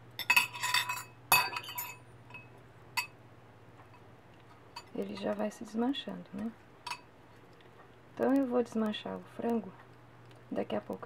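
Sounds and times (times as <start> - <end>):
metal forks clinking on glass dish: 0.2 - 3.2, 4.8 - 5.0.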